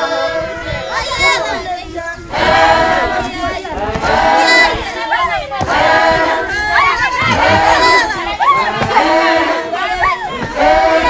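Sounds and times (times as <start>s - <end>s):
women singing group chant: 0.0s - 11.0s.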